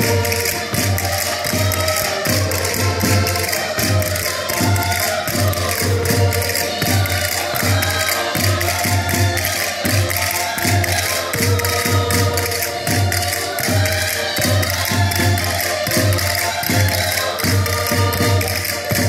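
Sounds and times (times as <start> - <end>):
button accordions playing folk tune: 0.0 - 19.0
clicking hand percussion: 0.0 - 19.0.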